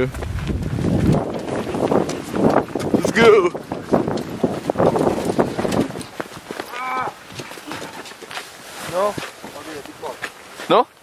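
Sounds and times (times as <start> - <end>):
person's strained call: 6.7 - 7.2
boots scuffing in snow: 7.4 - 10.8.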